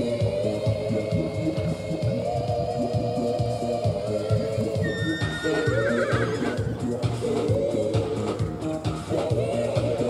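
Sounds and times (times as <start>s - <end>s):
background music with steady beat: 0.0s - 10.0s
horse whinnying: 4.2s - 7.2s.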